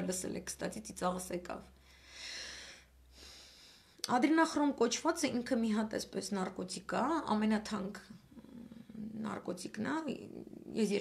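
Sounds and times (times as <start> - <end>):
woman's wordless vocal sounds: 8.0 - 11.0.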